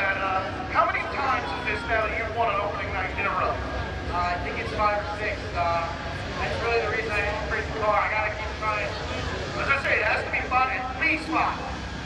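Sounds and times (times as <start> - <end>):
men talking into microphone: 0.0 - 11.8
steady low rumble: 0.0 - 12.0.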